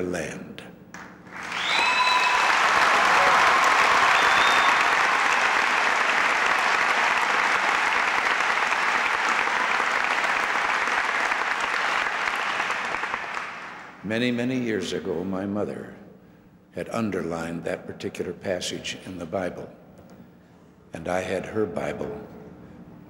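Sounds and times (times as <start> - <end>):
large audience applauding: 1.3 - 14.0
person whooping: 1.6 - 5.1.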